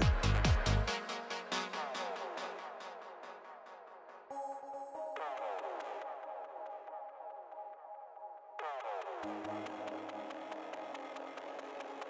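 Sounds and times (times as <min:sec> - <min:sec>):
low bass: 0:00.0 - 0:00.9.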